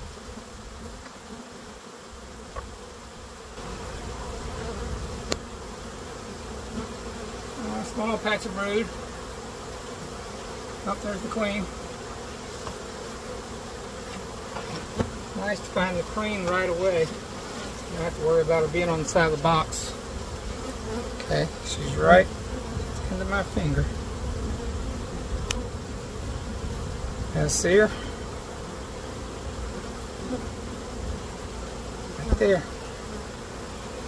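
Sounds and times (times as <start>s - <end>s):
honeybees buzzing: 0.0s - 34.0s.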